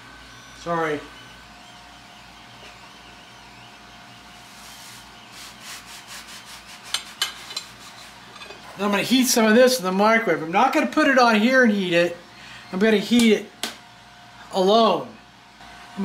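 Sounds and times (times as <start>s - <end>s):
faint machine whine: 0.0s - 16.0s
knife sawing through bread: 5.0s - 8.2s.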